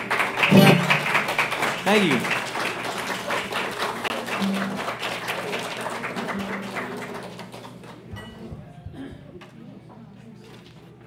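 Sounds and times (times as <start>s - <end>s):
audience applauding: 0.0s - 8.1s.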